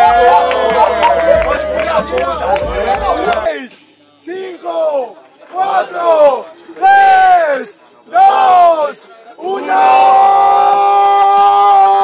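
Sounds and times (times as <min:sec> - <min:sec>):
young men shouting: 0:00.0 - 0:03.6, 0:04.4 - 0:12.0.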